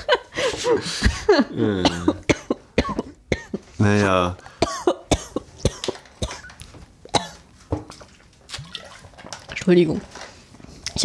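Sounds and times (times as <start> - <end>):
person coughing: 1.6 - 3.6, 4.6 - 6.5, 7.1 - 7.4.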